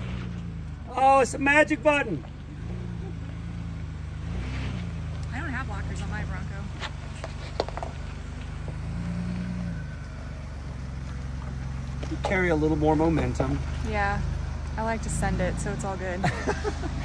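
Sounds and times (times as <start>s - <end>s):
engine running at low revs: 0.0s - 17.0s.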